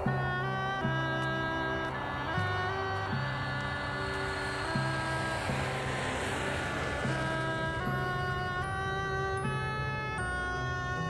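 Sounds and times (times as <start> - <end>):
airliner flying overhead: 0.0 - 11.0
film score music: 0.0 - 11.0.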